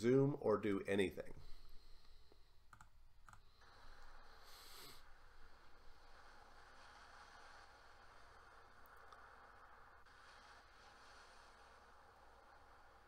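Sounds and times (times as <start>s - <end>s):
low steady hiss: 0.0s - 13.0s
computer mouse clicks: 2.7s - 3.5s.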